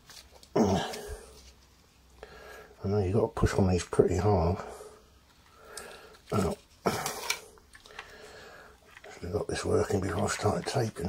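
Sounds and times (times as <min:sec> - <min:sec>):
tin foil crinkling: 0:00.0 - 0:01.8, 0:05.3 - 0:11.0.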